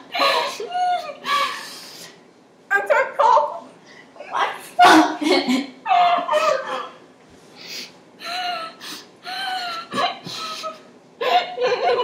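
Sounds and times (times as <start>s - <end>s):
girls laughing: 0.0s - 1.7s, 4.8s - 7.0s, 8.2s - 12.0s.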